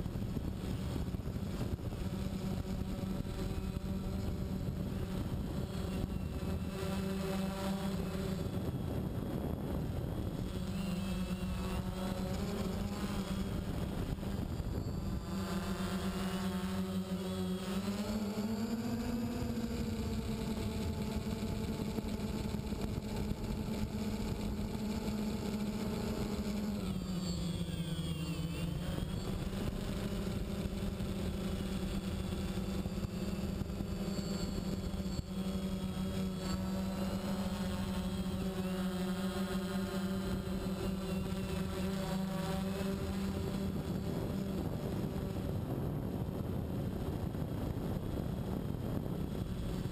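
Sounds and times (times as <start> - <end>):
drone motors whining: 0.0 - 49.9.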